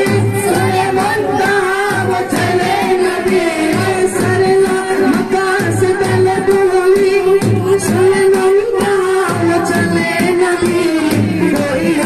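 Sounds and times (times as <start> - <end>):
men singing into microphones: 0.0 - 12.0.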